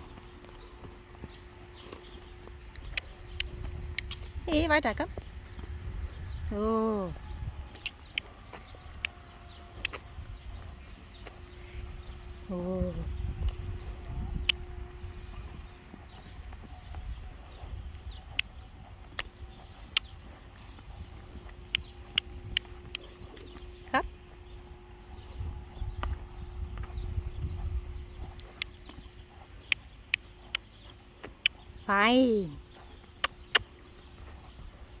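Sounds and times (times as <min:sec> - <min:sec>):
hooves thudding on sand: 0:00.0 - 0:35.0.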